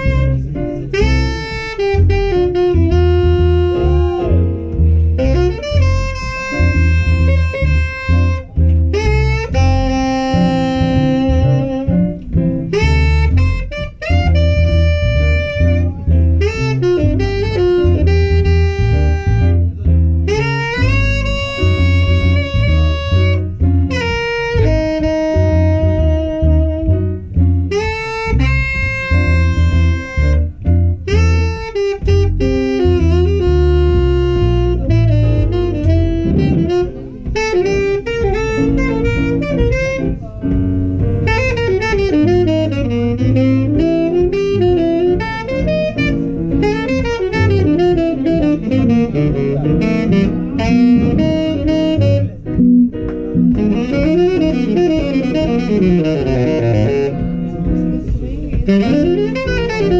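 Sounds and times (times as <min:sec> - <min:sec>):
double bass: 0:00.0 - 0:59.9
piano: 0:00.0 - 0:59.9
tenor saxophone solo: 0:00.0 - 0:59.9.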